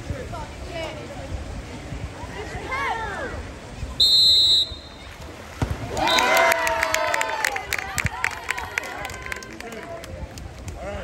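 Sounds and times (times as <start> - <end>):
referee's whistle blast: 4.0 - 5.1
spectators shouting and cheering: 4.4 - 11.0
people clapping: 5.8 - 11.0.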